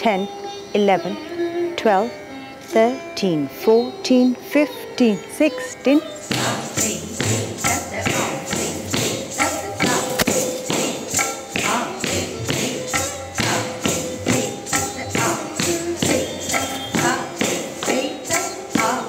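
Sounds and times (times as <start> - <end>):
ankle bells jingling: 1.8 - 19.0
bare feet striking wooden stage: 6.3 - 18.0.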